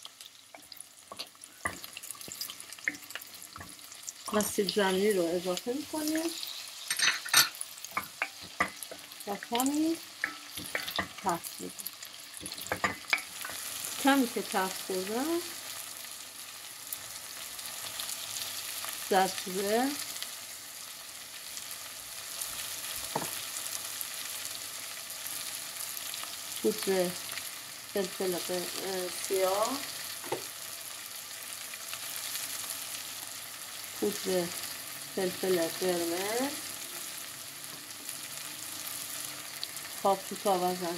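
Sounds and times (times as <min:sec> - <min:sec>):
vegetables sizzling in butter: 0:00.0 - 0:40.9.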